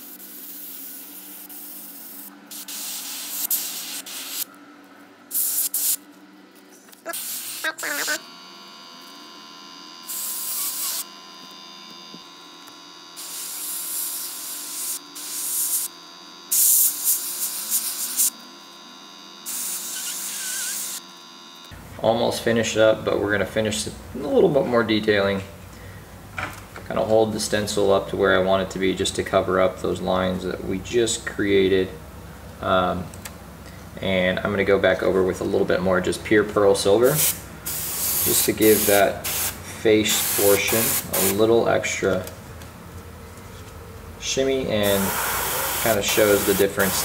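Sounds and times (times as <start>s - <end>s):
airbrush spraying hiss: 0.0s - 4.5s, 5.3s - 6.0s, 37.1s - 41.4s, 44.8s - 47.0s
air compressor hum: 0.0s - 47.0s.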